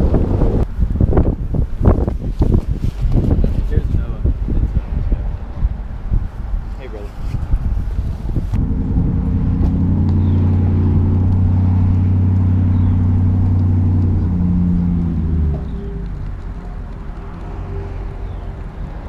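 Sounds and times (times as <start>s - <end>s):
vehicle engine drone: 0.0s - 2.1s, 7.6s - 19.0s.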